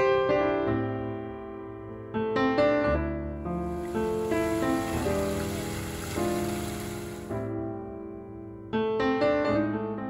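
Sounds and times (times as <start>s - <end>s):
soft piano music: 0.0s - 7.4s, 8.0s - 10.0s
fountain water rushing: 3.6s - 7.4s.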